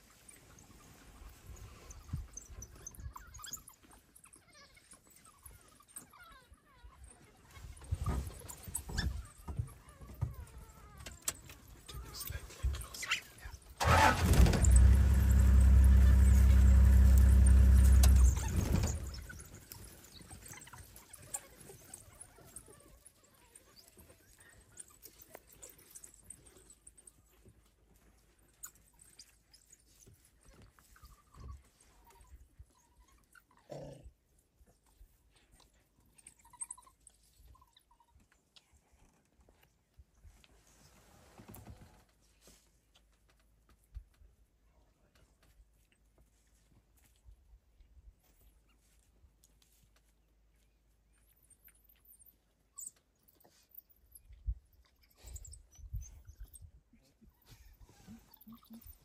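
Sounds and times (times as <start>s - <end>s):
vehicle engine running: 13.9s - 19.1s.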